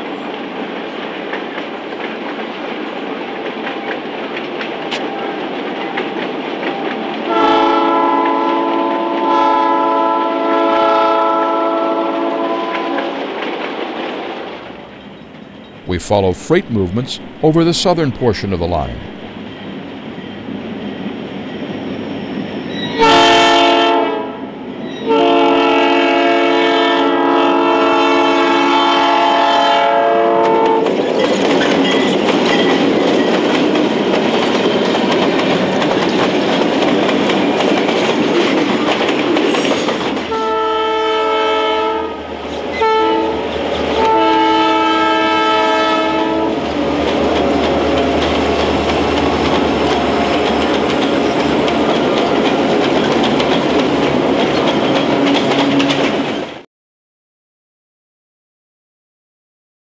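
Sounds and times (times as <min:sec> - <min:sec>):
train rumble and wheel clatter: 0:00.0 - 0:15.8, 0:28.7 - 0:56.6
locomotive air horn: 0:07.3 - 0:13.0, 0:23.0 - 0:24.4, 0:25.0 - 0:30.8, 0:40.3 - 0:42.2, 0:42.8 - 0:43.4, 0:44.0 - 0:46.6.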